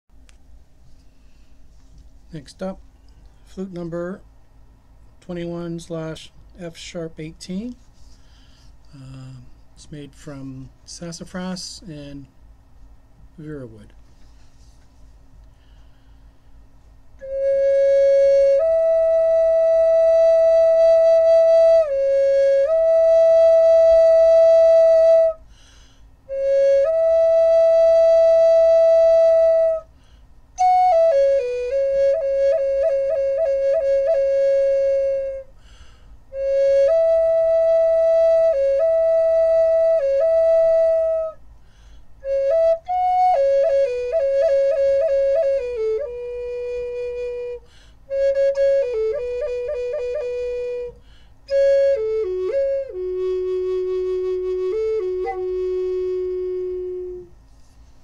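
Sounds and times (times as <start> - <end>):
wooden flute slow melody: 7.7 - 11.0, 14.2 - 58.0.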